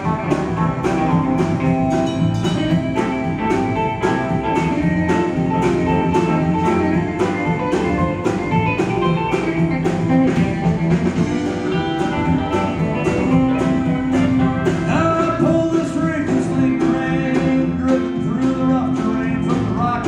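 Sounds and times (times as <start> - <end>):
drum kit beat: 0.0 - 20.0
electric bass: 0.0 - 20.0
electric guitar: 0.0 - 20.0.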